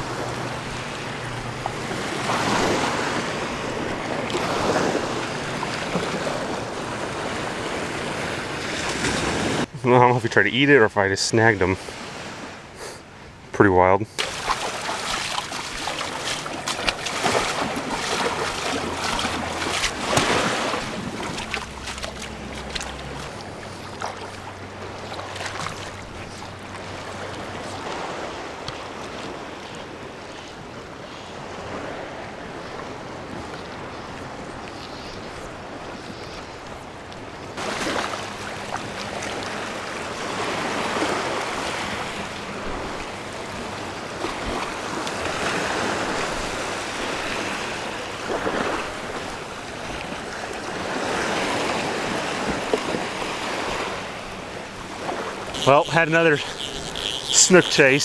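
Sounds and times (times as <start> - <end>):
surf waves washing on sand: 0.0 - 10.7, 13.9 - 58.0.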